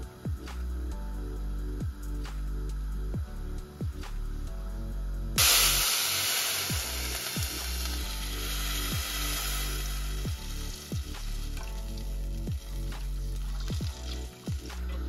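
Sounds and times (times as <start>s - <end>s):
background music: 0.0s - 15.0s
milk sizzling in hot pan: 5.4s - 15.0s.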